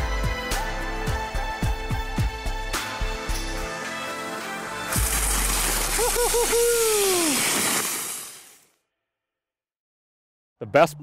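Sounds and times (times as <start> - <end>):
sled dogs running over snow: 4.9 - 8.5.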